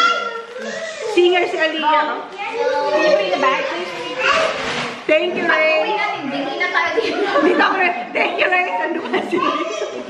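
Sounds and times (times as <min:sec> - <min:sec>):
toddler talking: 0:00.0 - 0:01.5, 0:02.2 - 0:04.7, 0:08.6 - 0:10.0
women talking: 0:01.1 - 0:02.3, 0:05.1 - 0:09.4.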